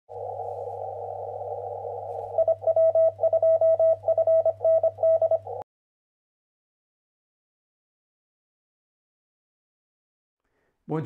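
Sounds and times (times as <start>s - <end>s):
radio hiss: 0.1s - 2.4s
low hum: 0.1s - 5.6s
morse code tone: 2.2s - 5.6s.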